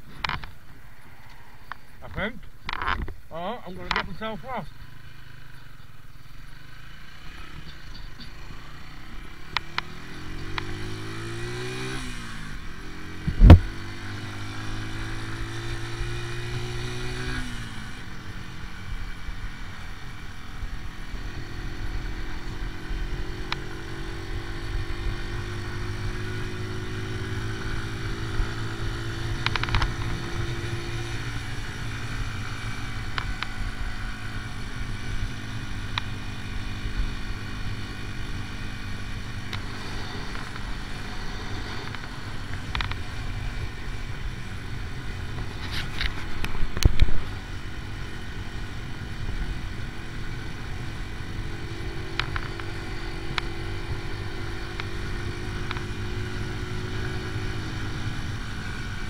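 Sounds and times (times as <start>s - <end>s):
motorcycle engine revving: 1.4s - 59.0s.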